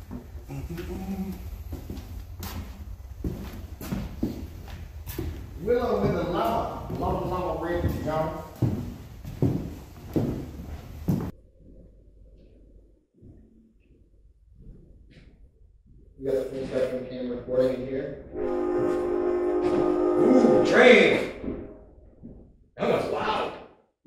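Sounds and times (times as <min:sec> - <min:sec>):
footsteps: 0:00.0 - 0:11.8, 0:13.2 - 0:20.1, 0:21.2 - 0:22.5
steady low hum: 0:00.0 - 0:22.4
indistinct voices: 0:00.4 - 0:01.9.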